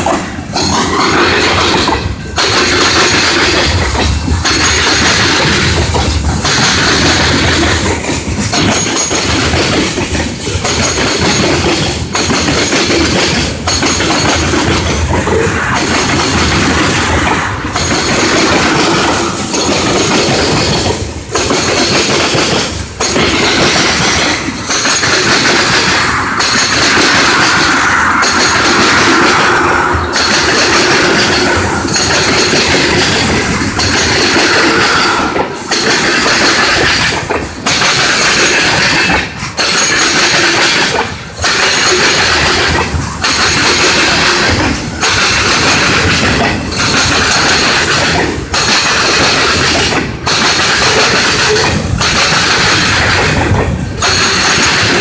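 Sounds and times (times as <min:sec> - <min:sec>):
train wheels clattering on rail: 0:00.0 - 0:55.0.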